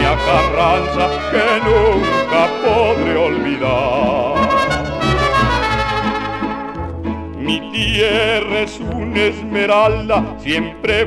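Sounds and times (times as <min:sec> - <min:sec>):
trumpets playing: 0:00.0 - 0:07.0
band playing behind: 0:00.0 - 0:11.0.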